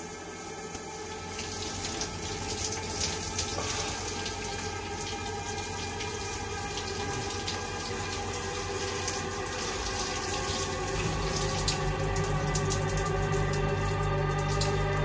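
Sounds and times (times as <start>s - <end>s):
shower spray running: 0.0s - 15.0s
film score music: 9.3s - 15.0s.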